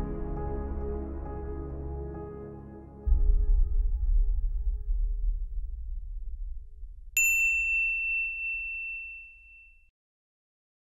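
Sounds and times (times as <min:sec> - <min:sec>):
background music: 0:00.0 - 0:05.1
bright ding ringing: 0:07.2 - 0:09.9.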